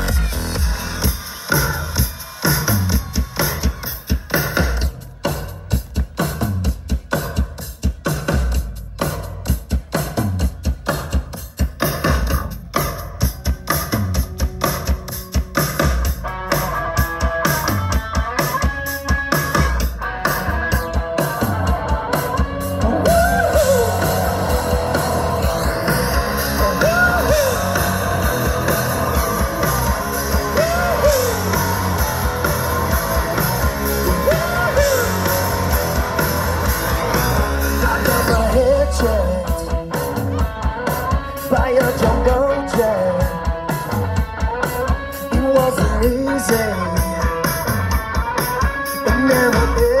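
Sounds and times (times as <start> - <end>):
drum kit beat: 0.0 - 50.0
electric guitars: 13.3 - 50.0.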